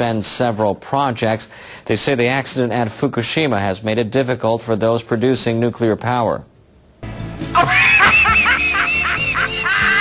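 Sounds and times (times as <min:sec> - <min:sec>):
music: 0:07.0 - 0:10.0.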